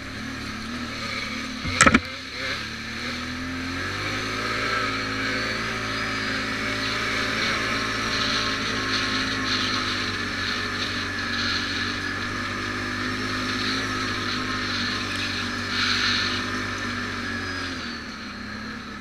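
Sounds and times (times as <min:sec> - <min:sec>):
atv engine running: 0:00.0 - 0:19.0.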